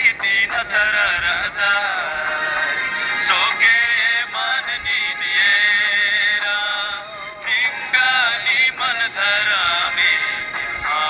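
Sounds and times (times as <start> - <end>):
devotional song with instruments: 0.0 - 11.0.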